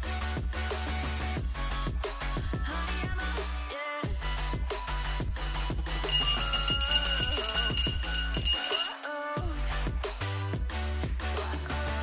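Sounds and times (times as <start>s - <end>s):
high bell-like ringing: 6.1s - 9.0s.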